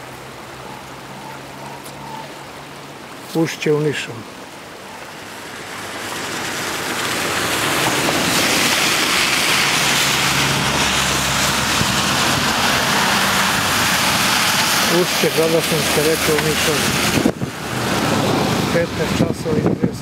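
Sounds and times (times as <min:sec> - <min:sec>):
floodwater rushing: 0:00.0 - 0:20.0.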